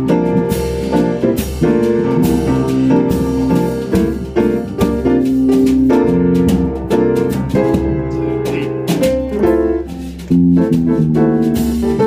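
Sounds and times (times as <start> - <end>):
drums keeping time: 0.0 - 12.0
upright piano playing jazz: 0.0 - 12.0.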